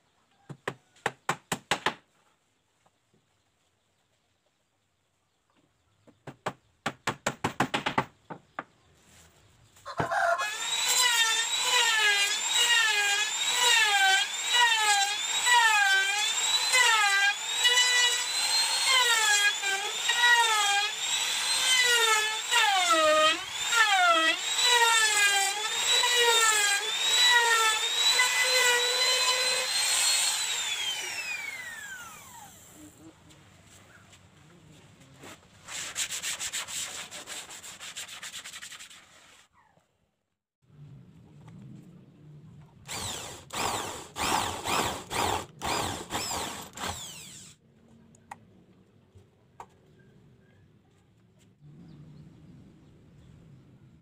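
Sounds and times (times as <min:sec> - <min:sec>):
electric router cutting wood: 0:10.4 - 0:32.9, 0:42.9 - 0:47.6.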